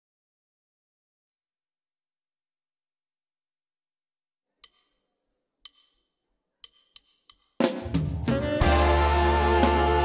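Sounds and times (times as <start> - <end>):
drumstick count-in clicks: 4.6 - 7.7
live band with drums and bass: 7.6 - 10.0.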